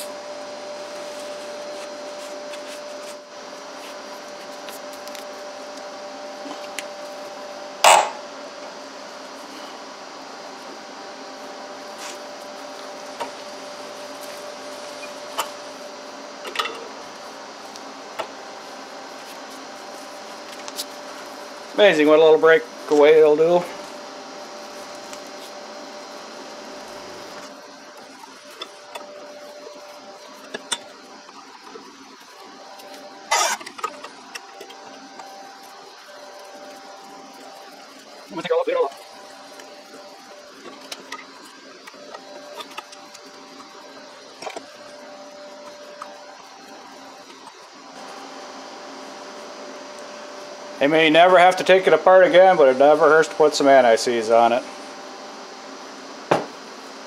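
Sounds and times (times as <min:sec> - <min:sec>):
heater humming: 0:00.0 - 0:57.0
sharp metal clank: 0:07.8 - 0:08.2.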